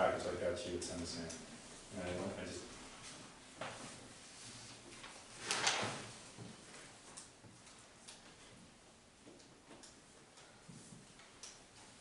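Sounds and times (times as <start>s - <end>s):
paper rustling: 3.6s - 6.9s.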